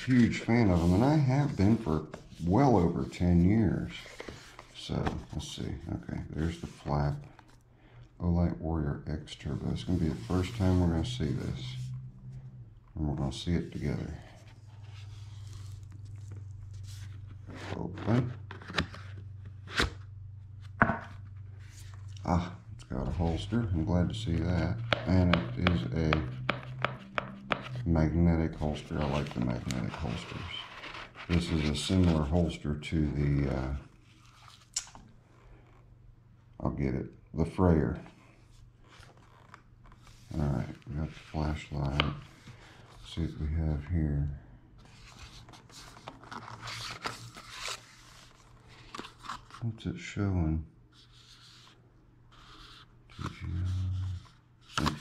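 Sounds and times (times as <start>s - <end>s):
cardboard rustling and scraping: 0.0s - 5.5s, 28.6s - 32.4s, 44.8s - 49.6s
steady low hum: 0.0s - 55.0s.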